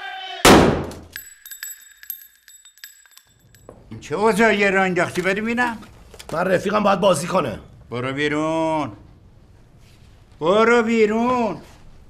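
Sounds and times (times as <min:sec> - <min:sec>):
rifle shot: 0:00.5 - 0:01.1
high steady ringing: 0:01.1 - 0:03.8
small clinks and ticks: 0:01.1 - 0:03.9.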